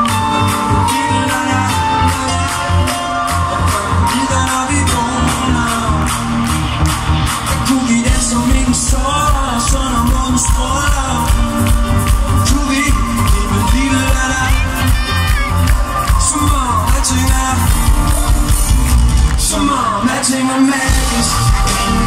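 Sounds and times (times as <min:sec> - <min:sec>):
live pop music with heavy bass: 0:00.0 - 0:22.0.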